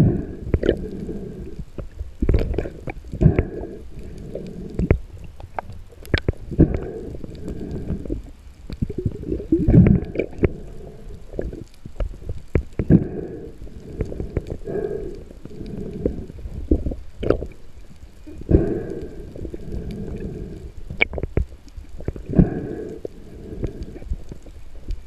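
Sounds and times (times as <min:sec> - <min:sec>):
underwater rumbling and gurgling: 0:00.0 - 0:25.0.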